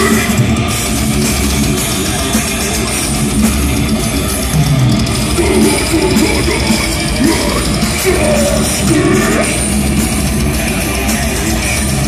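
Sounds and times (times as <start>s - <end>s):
distorted electric guitars: 0.0s - 12.0s
live metal band playing: 0.0s - 12.0s.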